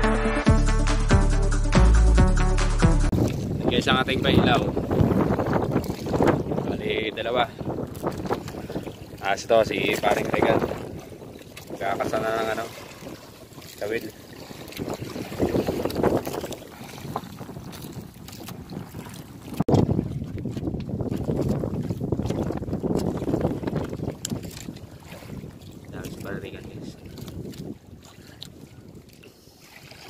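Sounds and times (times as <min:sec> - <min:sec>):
wind buffeting microphone: 0:03.1 - 0:29.4.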